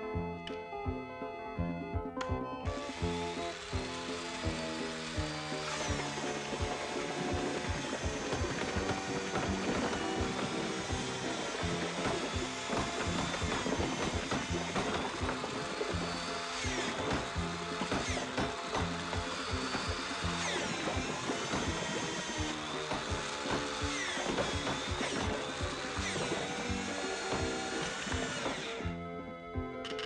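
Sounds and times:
rhythmic cartoon music: 0:00.0 - 0:30.0
electric drill running: 0:02.6 - 0:30.0.

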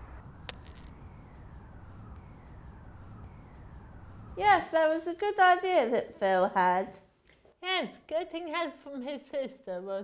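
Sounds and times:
outdoor background noise: 0:00.0 - 0:09.8
coin striking and bouncing on tarmac: 0:00.5 - 0:00.9.

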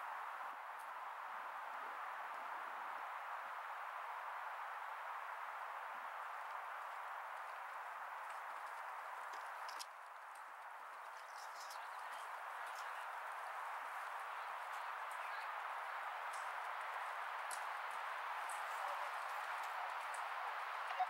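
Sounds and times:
horse hoofbeats cantering on dirt: 0:06.2 - 0:21.0.

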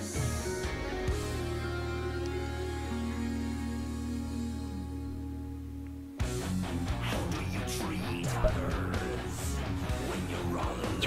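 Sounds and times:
rock band with electric guitar: 0:00.0 - 0:03.7, 0:06.2 - 0:11.0.

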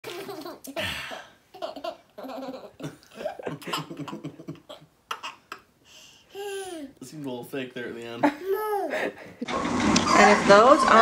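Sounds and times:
woman speaking: 0:10.1 - 0:11.0.

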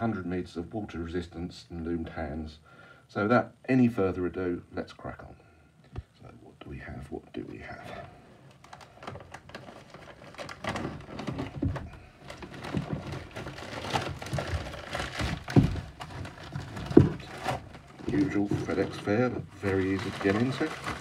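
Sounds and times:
plastic mailer crinkling and tearing: 0:08.4 - 0:21.0.

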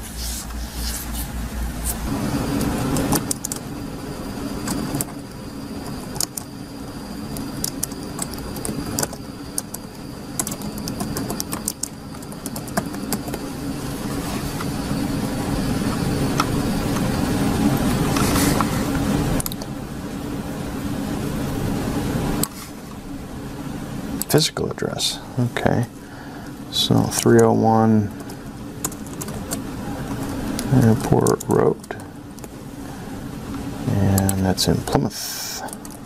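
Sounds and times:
steady low rumble: 0:00.0 - 0:31.2
computer keyboard keys clicking: 0:02.6 - 0:03.6, 0:05.8 - 0:06.5, 0:07.3 - 0:13.4, 0:19.4 - 0:19.7, 0:27.1 - 0:27.5, 0:28.2 - 0:32.5, 0:35.6 - 0:36.0.

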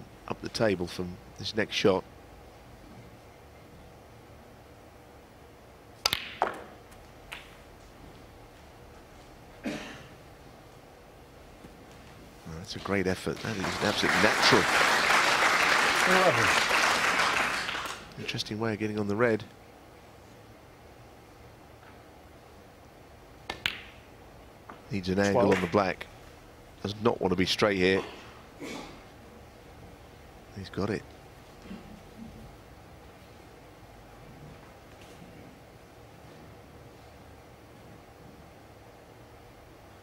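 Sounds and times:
cue striking ball: 0:06.1 - 0:06.8
balls clicking together: 0:23.4 - 0:24.0.

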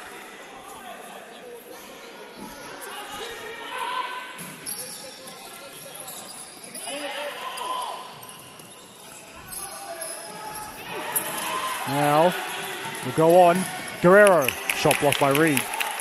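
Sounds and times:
spectators chattering: 0:00.0 - 0:16.0.

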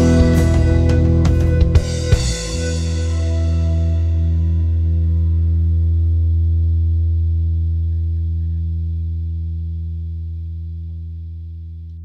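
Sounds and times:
electric guitar chord ringing: 0:00.0 - 0:11.0
deep low note: 0:00.0 - 0:12.0.

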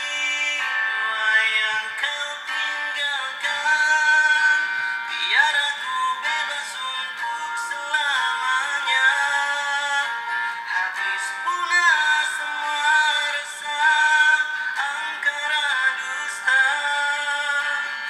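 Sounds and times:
pop ballad singing: 0:00.0 - 0:18.0.

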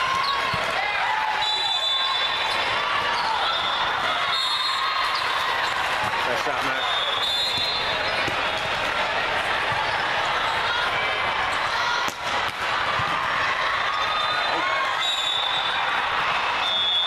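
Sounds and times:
sneakers squeaking on floor: 0:00.1 - 0:00.6, 0:06.5 - 0:08.8, 0:09.6 - 0:10.7
volleyball hit and bouncing: 0:07.4 - 0:10.1, 0:12.0 - 0:13.6
short high whistle blasts: 0:16.6 - 0:17.0.

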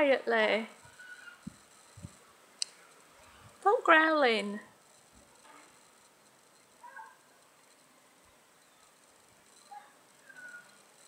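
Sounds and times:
faint high chirps: 0:00.8 - 0:03.5, 0:04.9 - 0:11.0.

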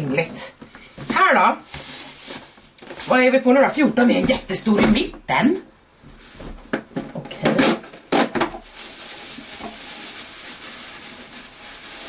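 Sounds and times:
shredded paper rustling: 0:01.6 - 0:03.4, 0:08.2 - 0:12.0.

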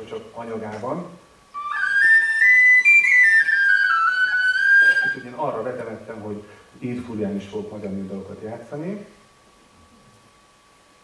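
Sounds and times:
tin whistle melody: 0:01.5 - 0:05.4.

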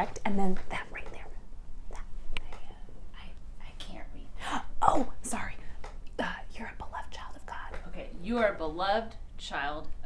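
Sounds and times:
woman whispering: 0:02.0 - 0:04.6.

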